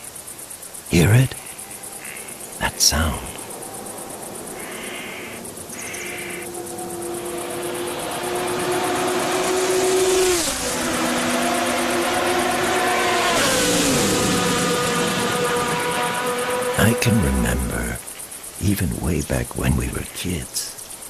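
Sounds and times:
crickets chirping: 0.0s - 21.0s
distant race car engine: 3.7s - 18.0s.

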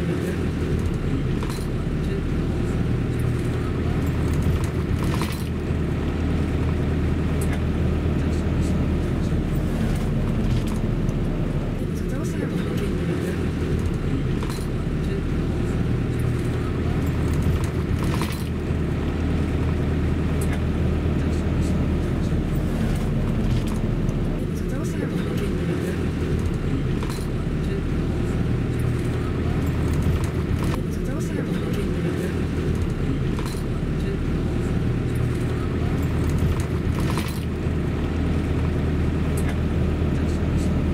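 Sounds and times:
car engine and road rumble: 0.0s - 40.9s.

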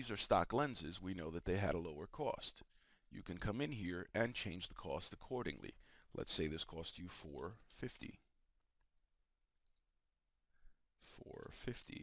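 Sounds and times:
computer keyboard and mouse clicks: 9.5s - 9.9s.

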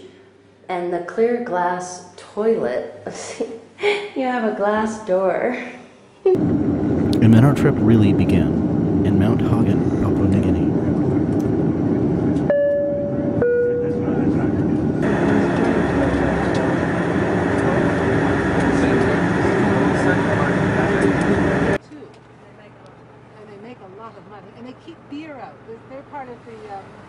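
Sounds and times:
loud turboprop engine noise: 6.4s - 21.8s
propeller engines droning: 6.4s - 21.8s.

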